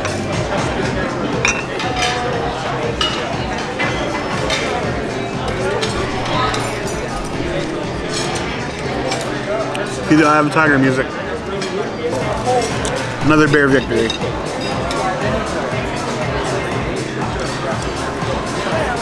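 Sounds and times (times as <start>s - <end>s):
background chatter: 0.0s - 19.0s
music: 0.0s - 19.0s
dishes and cutlery clinking: 1.3s - 10.7s, 11.4s - 15.3s.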